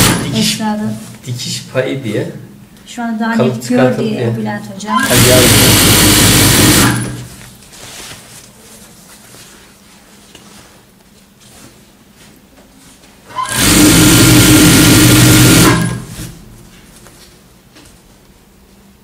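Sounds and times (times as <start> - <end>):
industrial sewing machine stitching: 0.0 - 0.6, 4.9 - 7.3, 13.3 - 16.4.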